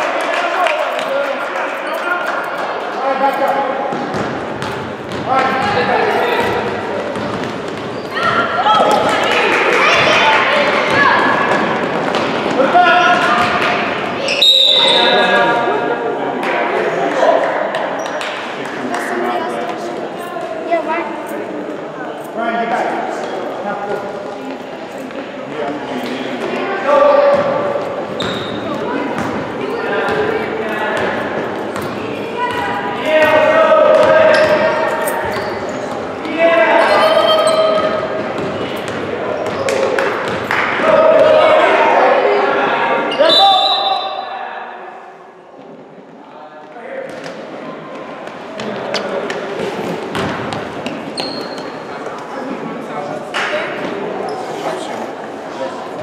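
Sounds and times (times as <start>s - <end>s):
people yelling in gym: 8.0s - 17.8s, 32.0s - 45.4s.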